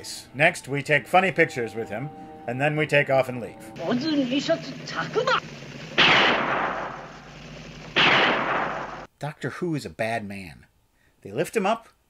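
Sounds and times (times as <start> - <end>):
gunshot: 6.0 - 9.1.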